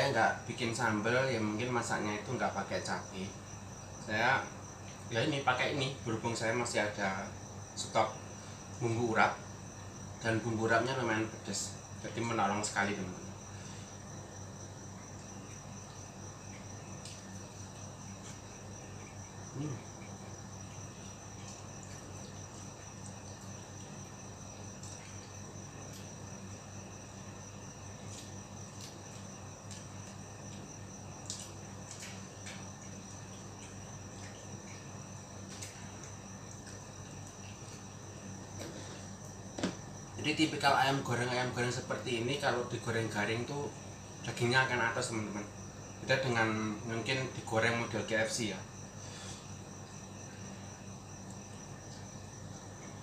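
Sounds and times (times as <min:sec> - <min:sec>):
high-pitched insect trill: 0:00.0 - 0:53.0
low steady hum: 0:00.0 - 0:53.0.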